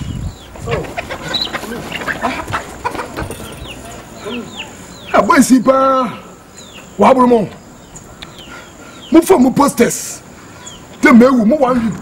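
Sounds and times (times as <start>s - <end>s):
chickens clucking: 0.0s - 5.4s, 6.2s - 9.2s, 10.3s - 11.0s.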